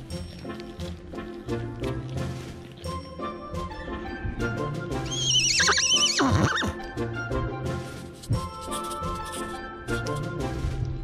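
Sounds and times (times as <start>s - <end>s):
background music: 0.0s - 11.0s
foal whinnying: 5.0s - 6.8s.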